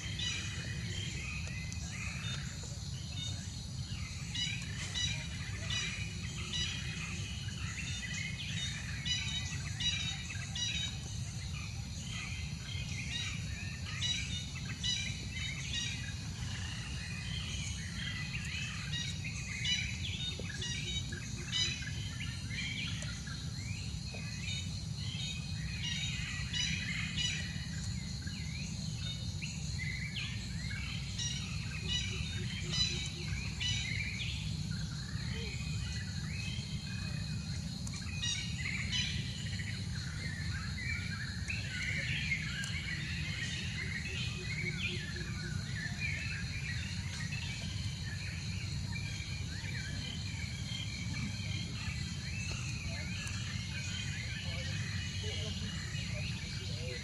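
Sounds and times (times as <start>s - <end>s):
birds chirping: 0.0s - 57.0s.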